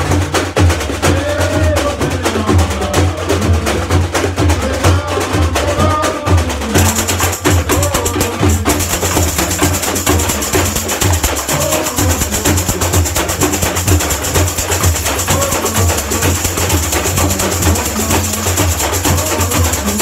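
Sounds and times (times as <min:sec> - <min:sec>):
bass drums beating: 0:00.0 - 0:20.0
jingle shakers hissing: 0:06.7 - 0:20.0.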